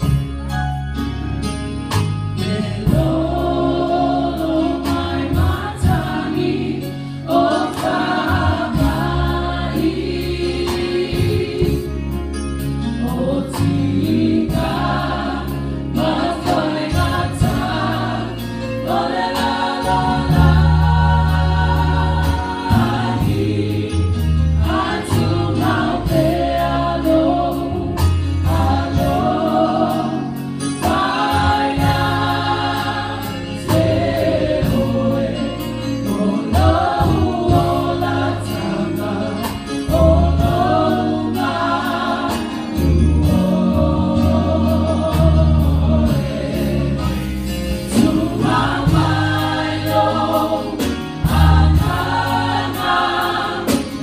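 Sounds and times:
choir singing gospel song: 0:00.0 - 0:00.3, 0:01.9 - 0:54.0
electric keyboard bass notes: 0:00.0 - 0:54.0.

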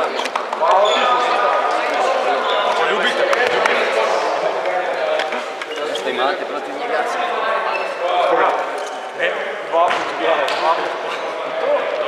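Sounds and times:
young men talking: 0:00.0 - 0:12.0.

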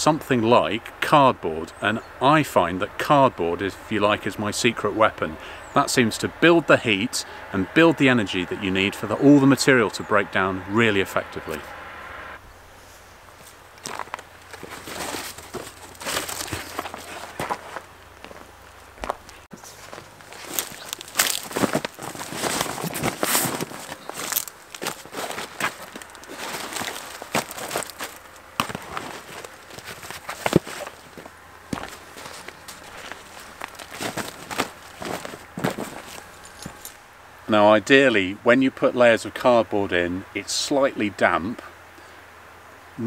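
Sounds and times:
footsteps on garden cuttings: 0:13.3 - 0:37.0
cardboard rustling and scraping: 0:13.4 - 0:18.5, 0:19.2 - 0:37.0.

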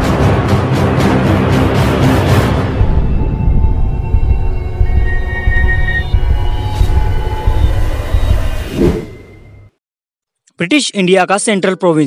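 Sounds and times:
deep cinematic rumble: 0:02.7 - 0:09.2.

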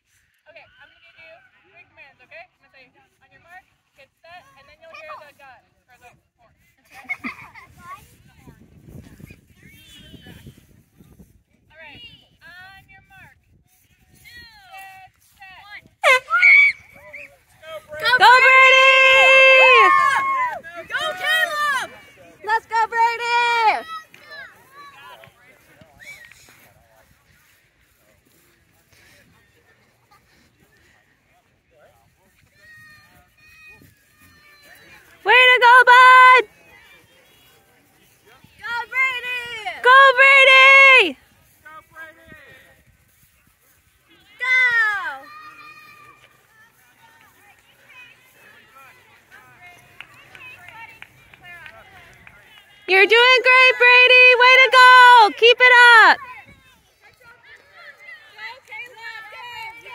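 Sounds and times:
high-pitched voices shouting and cheering: 0:18.0 - 0:23.9, 0:35.3 - 0:36.5, 0:39.8 - 0:41.1, 0:52.9 - 0:56.3.

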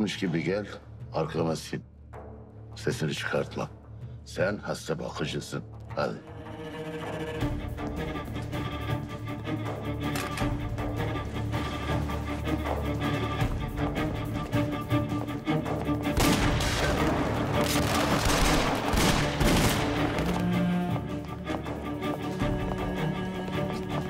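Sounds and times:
dramatic background music: 0:00.0 - 0:24.0
rapid gunfire: 0:16.2 - 0:20.1.

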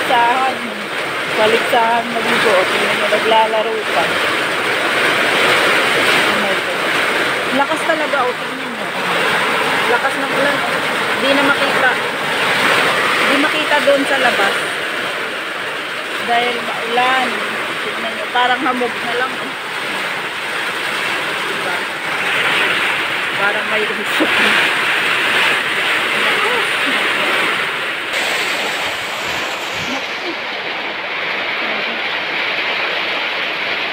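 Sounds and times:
heavy rain pouring: 0:00.0 - 0:33.9.

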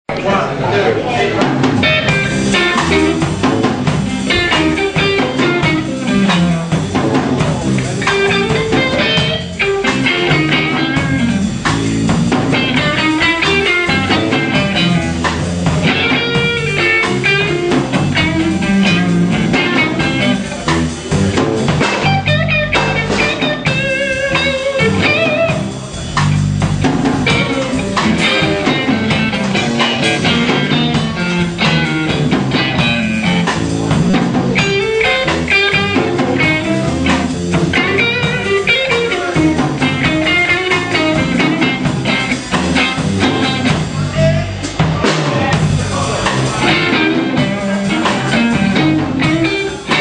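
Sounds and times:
blues band playing live: 0:00.1 - 0:50.0
guitar bending lead notes: 0:00.1 - 0:50.0.

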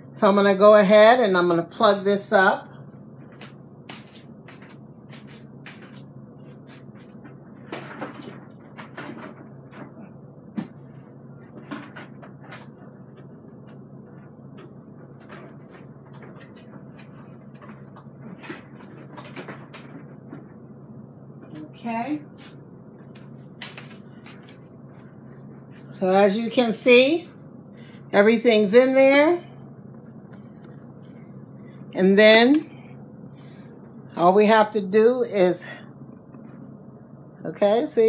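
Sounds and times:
faint low hum: 0:00.0 - 0:38.0.

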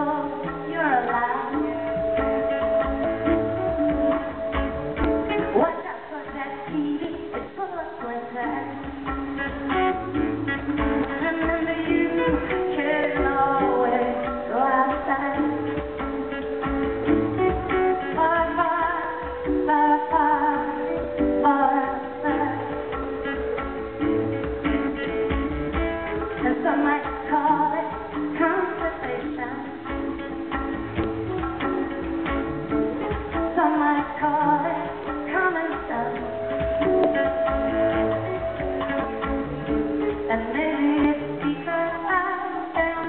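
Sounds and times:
acoustic guitar playing: 0:00.0 - 0:43.0
woman singing: 0:00.0 - 0:43.0.

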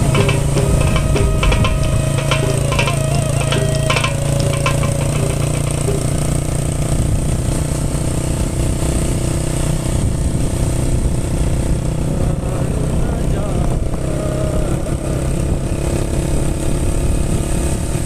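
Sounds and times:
background music plucked notes: 0:00.0 - 0:06.4
motorcycle engine running: 0:00.0 - 0:16.9.

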